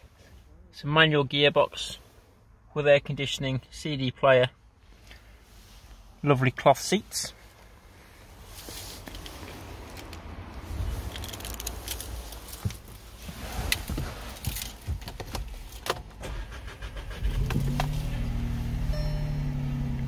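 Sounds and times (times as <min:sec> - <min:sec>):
car engine starting and idling: 0:07.4 - 0:20.0
keys rattling in ignition: 0:11.0 - 0:12.9, 0:13.7 - 0:17.8.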